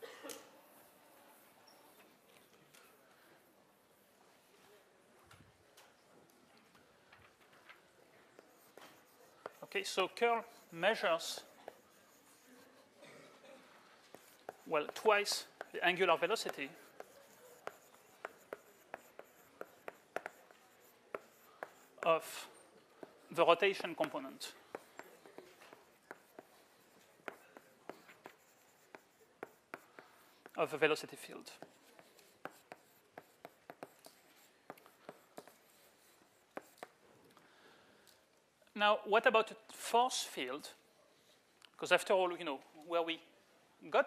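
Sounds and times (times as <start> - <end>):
chalk scratching: 0.6 - 2.0, 8.3 - 13.0, 14.0 - 37.0
chalk tapping on blackboard: 8.4 - 12.8, 14.1 - 22.4, 23.0 - 37.0.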